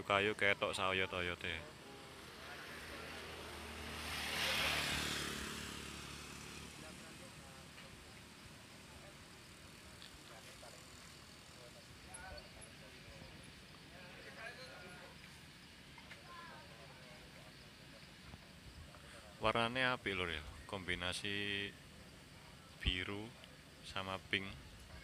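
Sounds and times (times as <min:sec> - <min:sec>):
vehicle passing by: 0:01.8 - 0:08.1.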